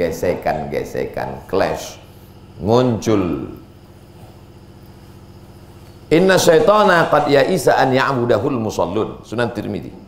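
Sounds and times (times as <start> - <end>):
pulsing mechanical hum: 0.0 - 10.0.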